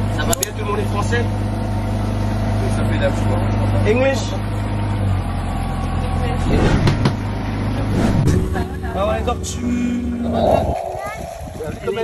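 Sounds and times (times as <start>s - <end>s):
motorboat engine droning: 0.1s - 12.0s
voices: 5.5s - 12.0s.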